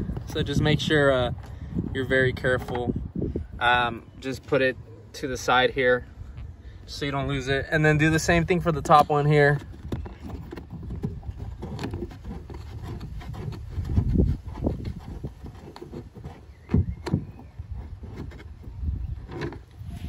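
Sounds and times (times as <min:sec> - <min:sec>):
handling noise rubbing: 0:04.3 - 0:20.0.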